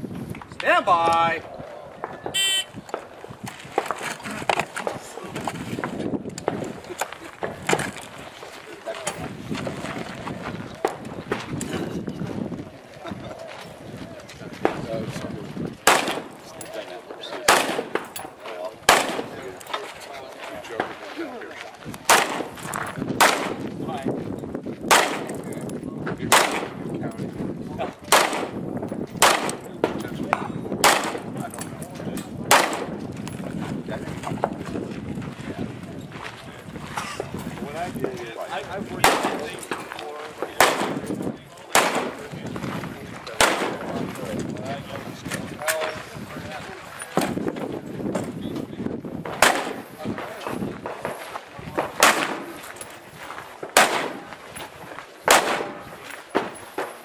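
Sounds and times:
gunshots: 15.8 - 19.6, 22.0 - 23.7, 24.9 - 25.5, 26.2 - 26.9, 28.0 - 28.6, 29.2 - 31.5, 32.4 - 33.0, 38.9 - 42.4, 43.2 - 44.2, 49.2 - 50.0, 50.8 - 52.7, 53.6 - 54.4, 55.2 - 57.0.

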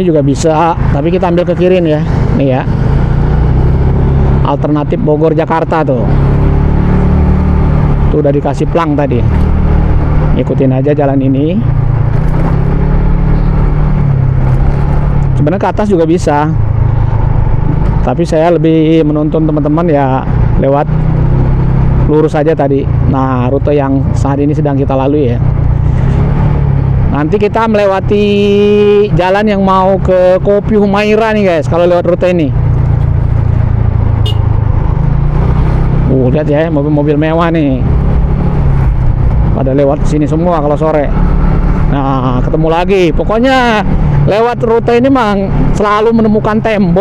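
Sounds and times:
motorcycle engine running: 0.0 - 47.0
road and wind noise: 0.0 - 47.0.

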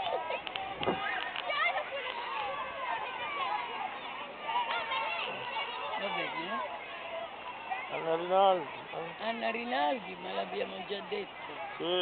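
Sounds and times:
children chattering and calling out: 0.0 - 12.0.

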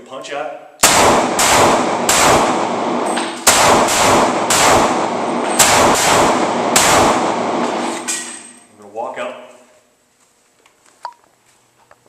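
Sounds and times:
pistol shots echoing indoors: 0.8 - 8.6.

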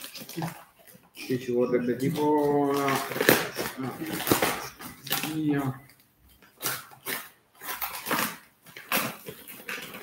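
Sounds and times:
paper and packing tape ripping: 0.0 - 5.8, 6.4 - 10.0.

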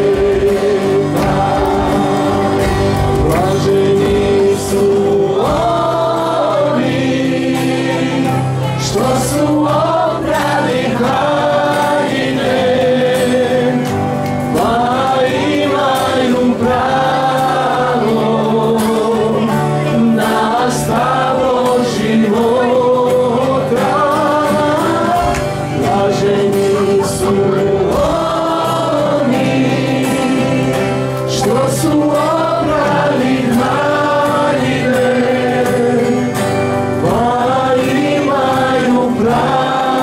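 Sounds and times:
acoustic guitars: 0.0 - 40.0
group singing into microphones: 0.0 - 40.0
keyboard: 0.0 - 40.0.

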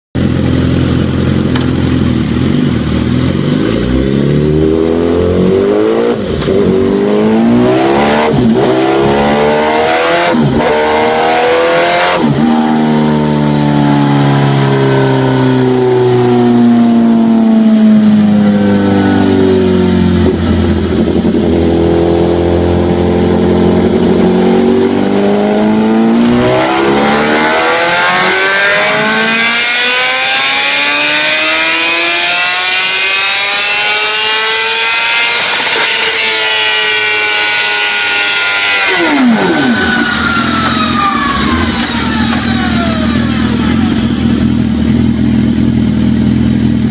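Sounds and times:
motorcycle engine revving: 0.2 - 46.9.

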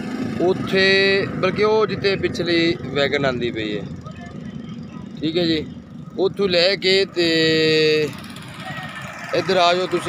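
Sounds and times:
background vehicle noise: 0.0 - 10.0.

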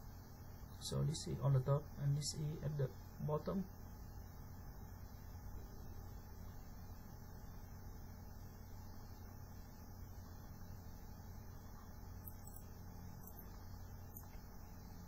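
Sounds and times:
faint low hum: 0.0 - 15.0
low background hiss: 0.0 - 15.0.

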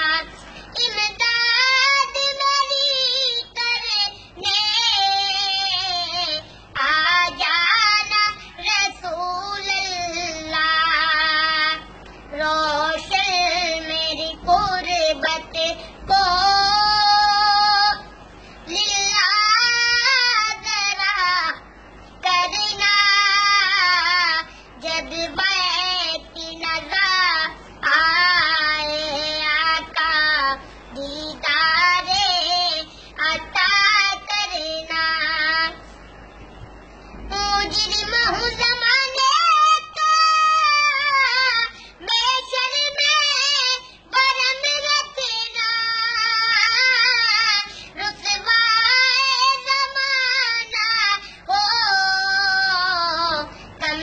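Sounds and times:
boy singing unaccompanied: 0.0 - 35.8, 37.3 - 54.0.

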